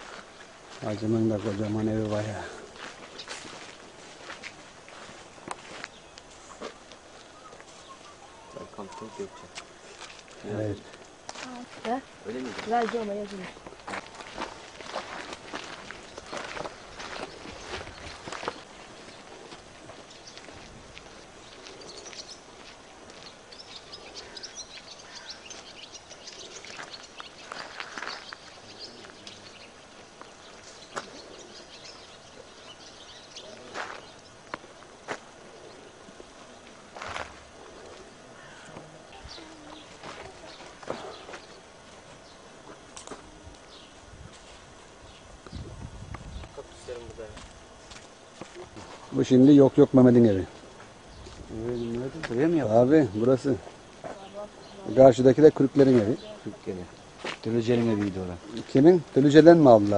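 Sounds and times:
small birds chirping: 0:00.0 - 0:44.1, 0:44.9 - 0:59.9
outdoor background hiss: 0:00.0 - 0:59.9
soft footsteps on a path: 0:00.0 - 0:59.9
faint distant voice: 0:37.9 - 0:41.3.

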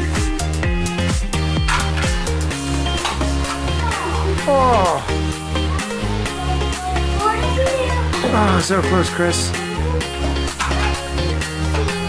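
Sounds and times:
electronic music with deep bass: 0:00.0 - 0:08.6.

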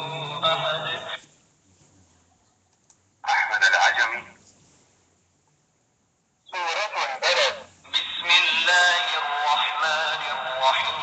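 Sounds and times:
man chanting through tinny speaker: 0:00.0 - 0:02.2, 0:03.2 - 0:04.4, 0:06.5 - 0:11.0.

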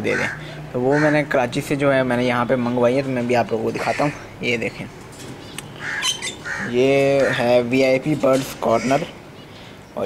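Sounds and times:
man's voice: 0:00.0 - 0:04.9, 0:06.6 - 0:09.2
birds giving short high calls: 0:05.4 - 0:07.5.

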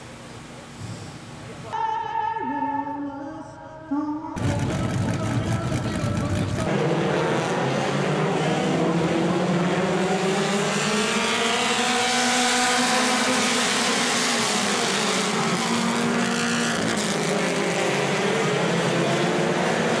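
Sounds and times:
race car engines droning: 0:04.4 - 0:20.0.

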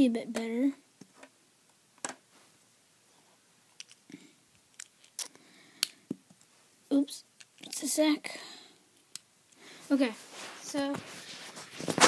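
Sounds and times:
plastic bricks clicking: 0:03.8 - 0:04.0.

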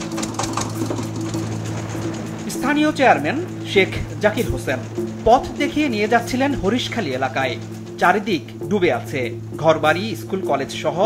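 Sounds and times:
small boat engine running: 0:00.0 - 0:11.0.

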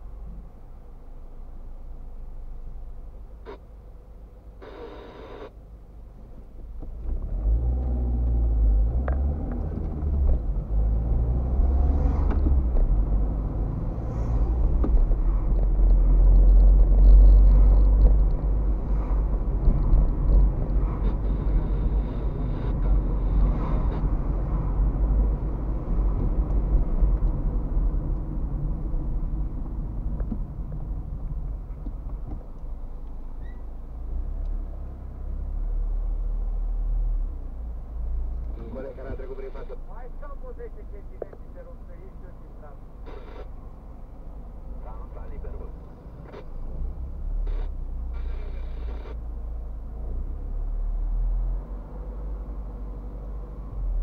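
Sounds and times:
car engine: 0:00.0 - 0:54.0
road rumble: 0:00.0 - 0:54.0.

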